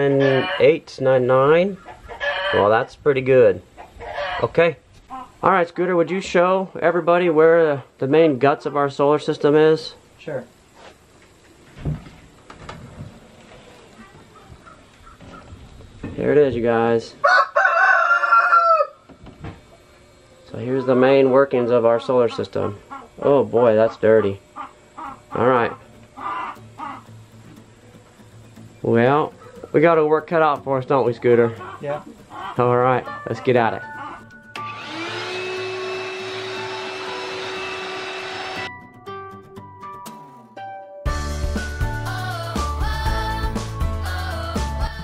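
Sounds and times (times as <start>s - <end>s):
rooster crowing: 0.0s - 0.7s, 2.2s - 2.7s, 4.0s - 4.5s, 17.2s - 19.1s
shop vacuum running: 34.5s - 38.7s.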